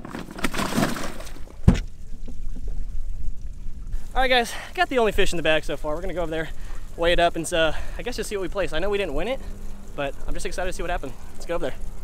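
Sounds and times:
water splashing and pouring: 0.0 - 12.0.

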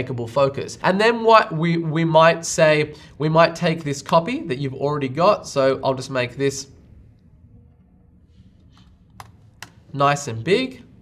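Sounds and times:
computer keys clicking: 8.7 - 9.8.

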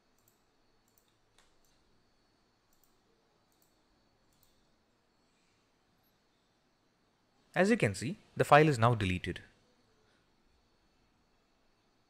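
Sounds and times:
faint computer mouse clicks: 0.1 - 1.8, 2.7 - 4.7.

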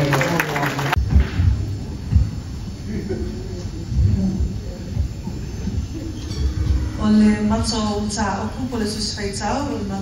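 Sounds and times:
low rumbling room noise: 0.0 - 10.0
murmur of voices: 0.0 - 10.0.

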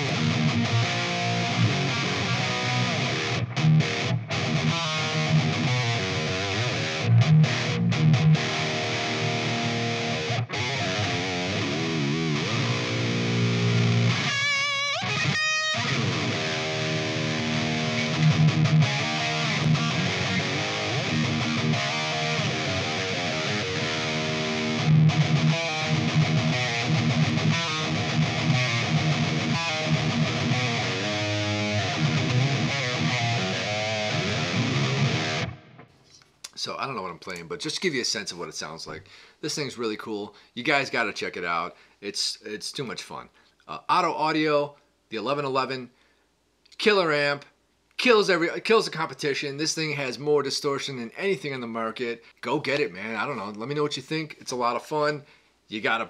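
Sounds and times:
distorted electric guitar riffing: 0.0 - 35.9.

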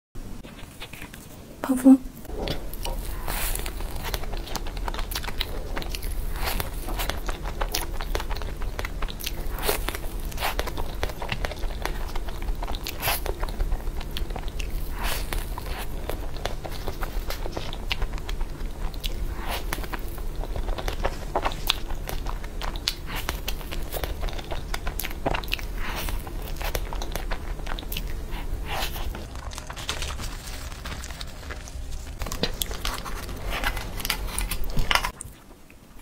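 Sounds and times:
crunchy chewing and biting: 0.4 - 1.4, 2.3 - 36.0.

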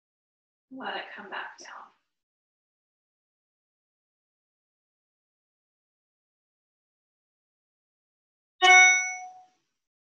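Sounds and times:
bright ding chime: 8.6 - 9.5.

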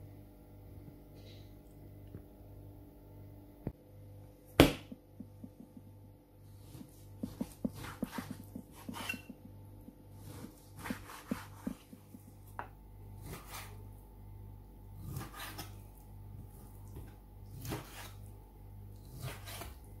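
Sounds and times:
low steady hum: 0.0 - 20.0
knife knocking on cutting board: 4.6 - 5.9.

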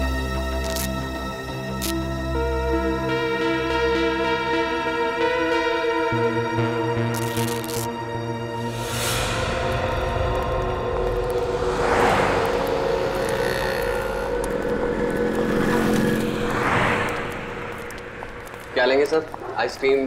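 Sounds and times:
drone of held tones: 8.4 - 16.7
low rumble: 8.5 - 19.8
whooshes: 8.7 - 19.5.

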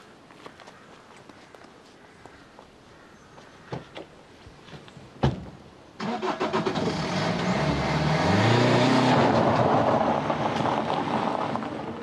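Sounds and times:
car engine revving: 6.0 - 12.0
tyres crunching on gravel: 6.8 - 12.0.

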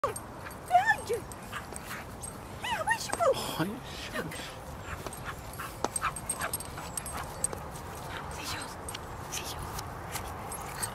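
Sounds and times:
woman calling out: 0.0 - 1.3, 2.6 - 3.5.

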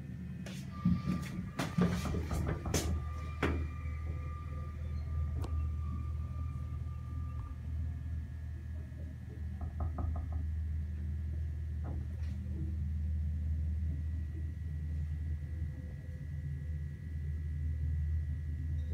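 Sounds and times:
elevator humming: 0.0 - 18.9
thin high tone: 3.0 - 8.3.

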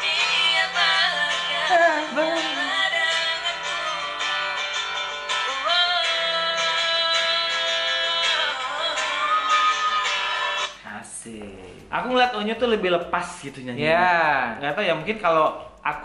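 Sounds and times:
girl and boy singing duet: 0.0 - 4.7, 5.3 - 10.8.

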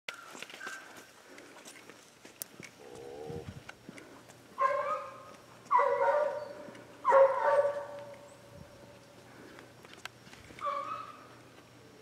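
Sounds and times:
dog barking: 4.6 - 8.1, 10.6 - 11.2.

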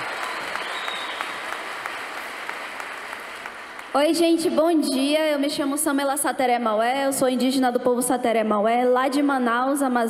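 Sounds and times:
large audience applauding: 0.0 - 4.0.

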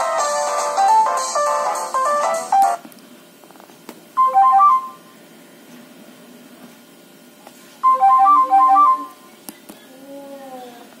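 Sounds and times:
phone ringtone melody: 4.2 - 5.0, 7.8 - 9.2.

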